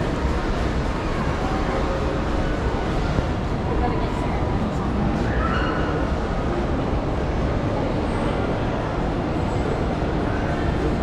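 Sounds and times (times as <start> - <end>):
indoor shopping centre rumble: 0.0 - 11.0.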